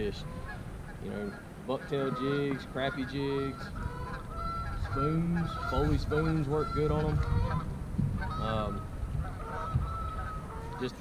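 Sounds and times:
birds calling: 0:00.0 - 0:11.0.

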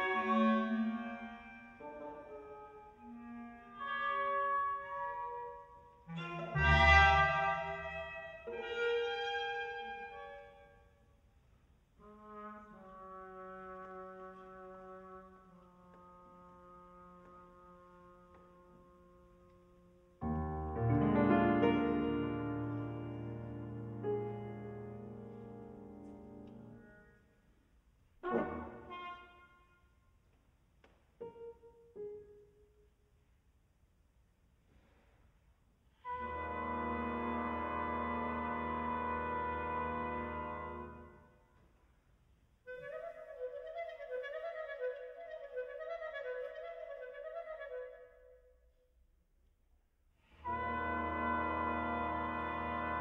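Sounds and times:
chamber ensemble music: 0:00.0 - 0:10.9, 0:20.2 - 0:27.6, 0:28.2 - 0:29.7, 0:36.0 - 0:41.4, 0:50.3 - 0:53.0.

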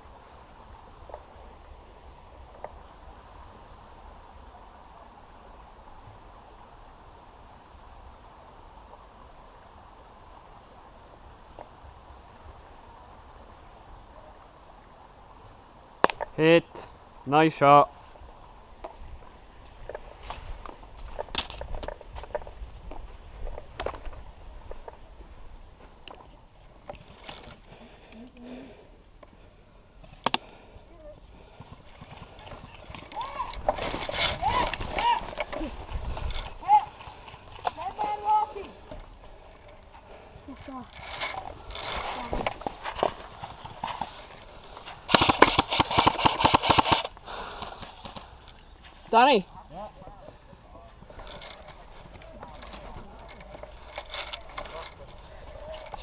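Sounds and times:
airsoft rifle full-auto burst: 0:45.1 - 0:47.1
scattered clicks: 0:45.1 - 0:47.2.

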